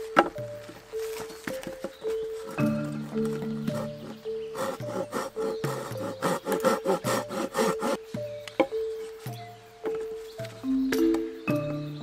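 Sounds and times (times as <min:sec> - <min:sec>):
background music: 0:00.0 - 0:12.0
hand saw cutting wood: 0:02.5 - 0:08.0.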